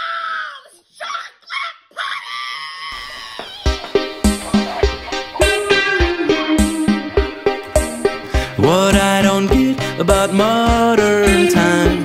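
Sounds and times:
woman shrieking and yelling: 0.0s - 3.9s
plucked guitar with beat: 3.7s - 12.0s.

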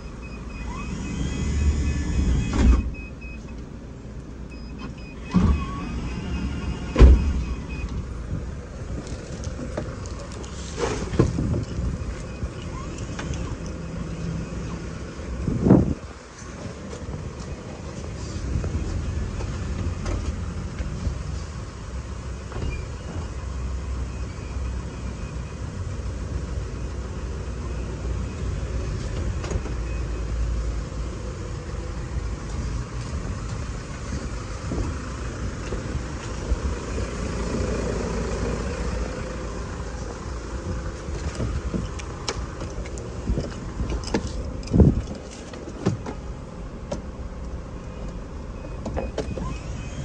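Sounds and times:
sliding door motor whir: 0.6s - 2.9s, 4.8s - 8.0s
van engine idling: 30.1s - 50.0s.

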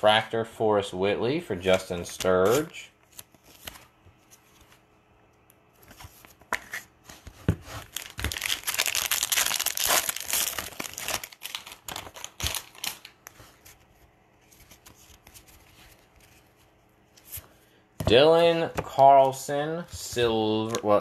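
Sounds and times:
foil wrapper crinkling: 7.8s - 13.3s.

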